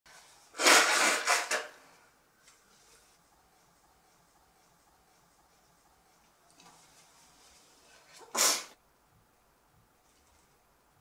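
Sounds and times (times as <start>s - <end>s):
woman sneezing: 8.2s - 8.8s.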